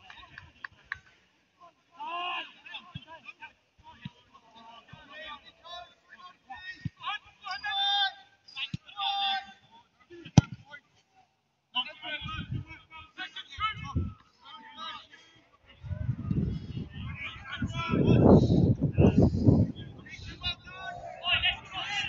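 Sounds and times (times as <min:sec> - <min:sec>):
footballers shouting: 0:02.0 - 0:02.8, 0:20.0 - 0:22.0.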